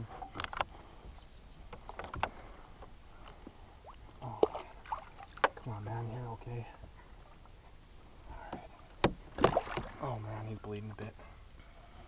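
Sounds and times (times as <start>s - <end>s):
faint background noise: 0.0s - 12.0s
light knocks in a canoe: 8.4s - 9.9s.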